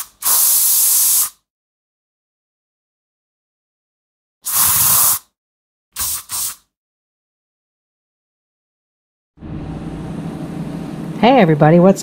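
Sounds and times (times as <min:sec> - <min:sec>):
spray hiss bursts: 0:00.0 - 0:01.4, 0:04.5 - 0:05.2, 0:06.0 - 0:06.7.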